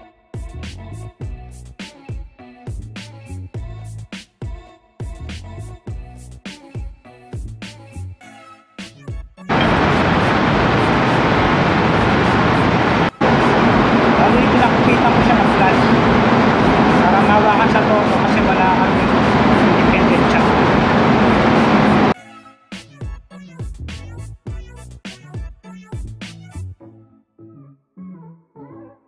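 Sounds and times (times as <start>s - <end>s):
diesel generator running: 9.5s - 22.2s
low hum: 9.5s - 22.2s.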